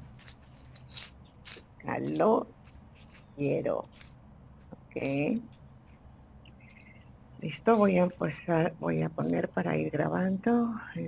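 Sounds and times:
person speaking: 0:00.0 - 0:05.6, 0:06.6 - 0:11.0
soft hissing sounds: 0:00.0 - 0:09.5
faint low hum: 0:00.0 - 0:11.0.

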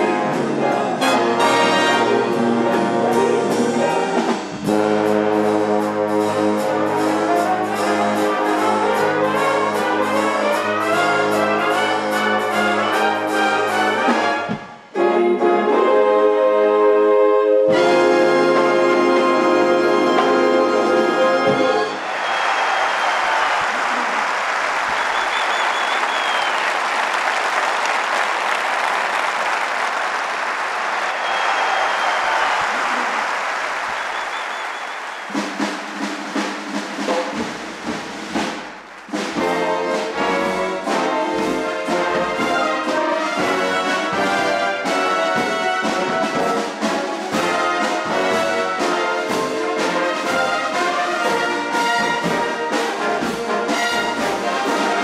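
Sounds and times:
brass marching band playing: 0:00.0 - 0:30.2, 0:30.9 - 0:55.0
audience applause: 0:21.4 - 0:36.7.

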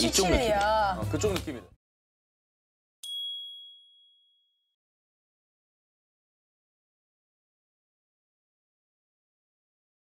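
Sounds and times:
bright chime: 0:03.0 - 0:04.6.

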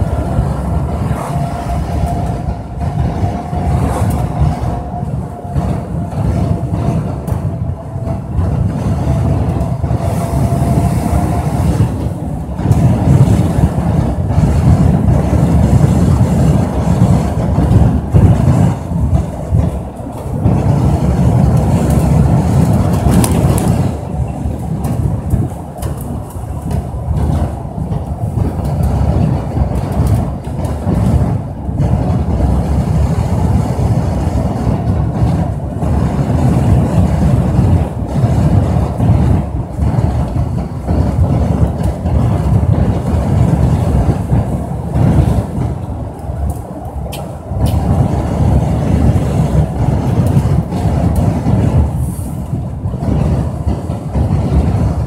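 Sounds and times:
road vehicle low rumble: 0:00.0 - 0:55.0
wind buffeting the microphone: 0:00.0 - 0:55.0.

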